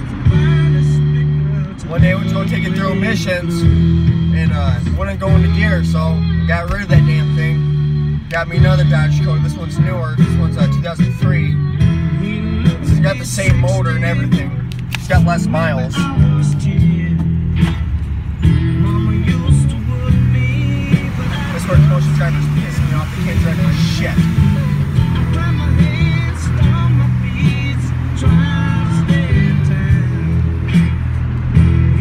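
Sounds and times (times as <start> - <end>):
rock song on stereo: 0.0 - 32.0
truck road noise: 0.0 - 32.0.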